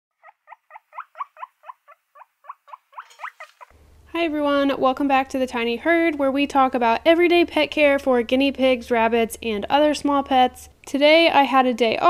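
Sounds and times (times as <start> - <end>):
guinea pig squealing: 0.2 - 3.7.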